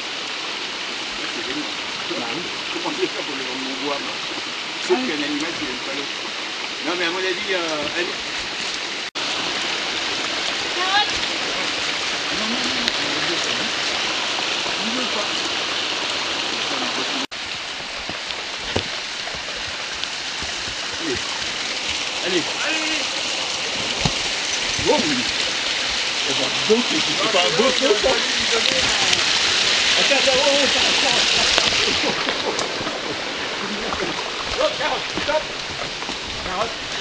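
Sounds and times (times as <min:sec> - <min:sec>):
stream running over rocks: 0:00.0 - 0:37.0.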